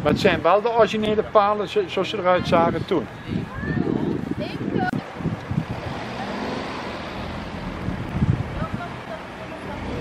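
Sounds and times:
wind buffeting microphone: 0.0s - 1.3s, 2.3s - 10.0s
car driving past: 5.5s - 8.6s.

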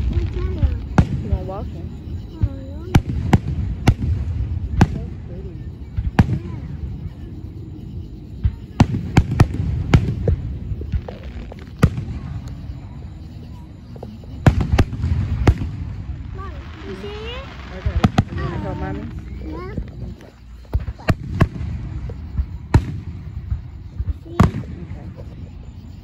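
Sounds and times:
indistinct crowd voices: 0.0s - 26.0s.

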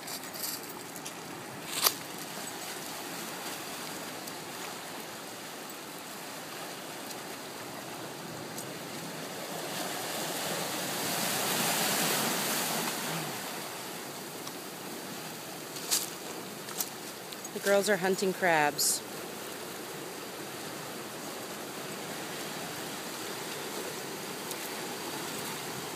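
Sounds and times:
surf washing over rocks: 0.0s - 25.9s.

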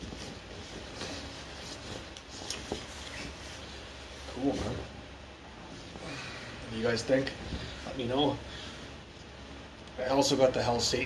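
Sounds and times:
fabric rustling: 0.0s - 11.0s.

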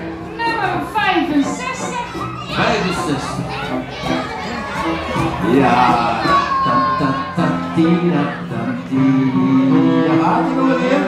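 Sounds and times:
audience shouting: 1.4s - 11.0s.

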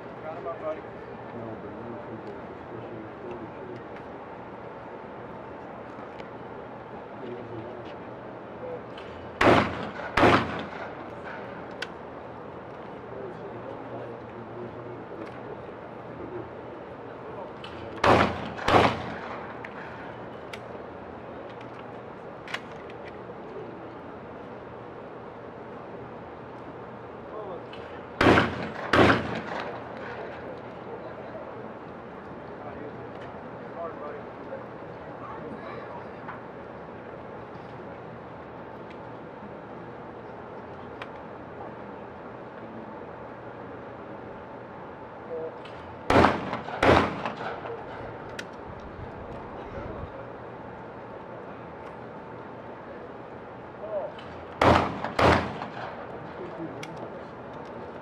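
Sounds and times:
shotgun shots: 9.4s - 11.4s, 18.0s - 19.9s, 28.2s - 30.3s, 46.1s - 48.0s, 54.6s - 56.0s.

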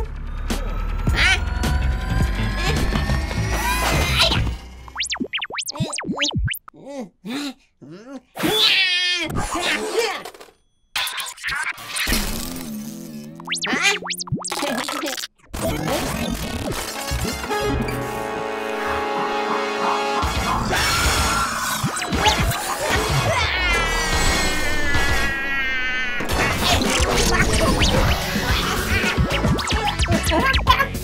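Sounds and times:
cartoon music: 0.6s - 6.7s, 13.3s - 21.1s, 21.8s - 23.7s, 26.2s - 31.0s
rising whirl: 1.4s - 5.2s.

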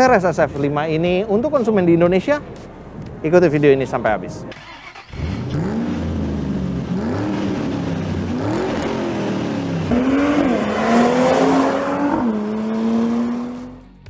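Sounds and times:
sports car engine revving: 4.7s - 13.8s.

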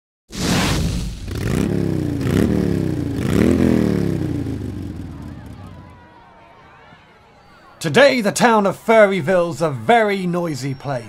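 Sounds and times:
whooshes: 0.3s - 3.3s
racing engine revving: 0.4s - 5.9s.

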